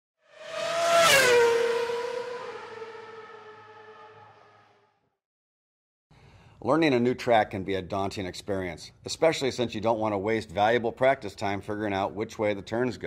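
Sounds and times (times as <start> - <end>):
race car passing at speed: 0.2 - 4.9.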